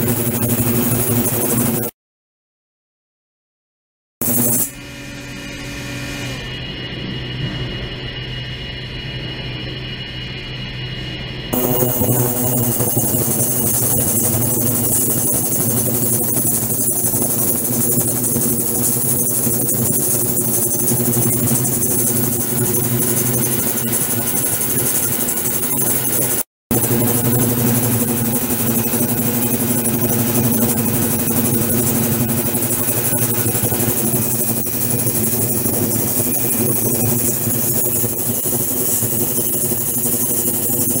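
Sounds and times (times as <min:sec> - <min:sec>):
buzzing hum: 0:04.2 - 0:41.0.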